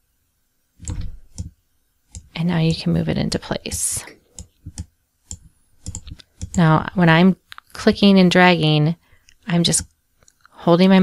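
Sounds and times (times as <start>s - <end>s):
computer mouse clicks: 0.8s - 1.5s, 2.1s - 2.3s, 3.7s - 6.7s.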